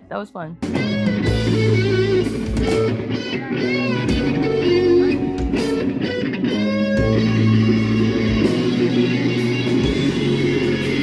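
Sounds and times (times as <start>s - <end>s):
rock band playing: 0.6s - 11.0s.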